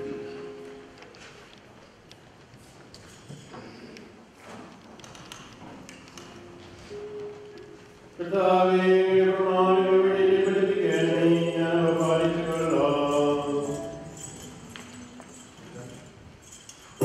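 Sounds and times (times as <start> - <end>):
voices singing liturgical chant: 8.2 - 14.6.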